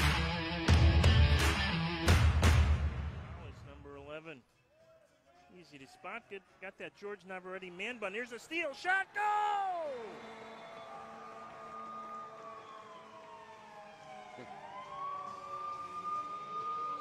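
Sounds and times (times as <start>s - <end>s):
arena goal siren: 9.5s - 17.0s.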